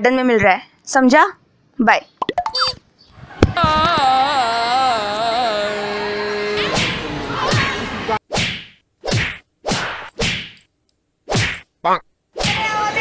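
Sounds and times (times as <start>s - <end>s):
quick swishes: 8.3s - 10.6s, 11.3s - 11.7s
whacking and slapping hits: 8.3s - 10.7s, 11.3s - 11.7s.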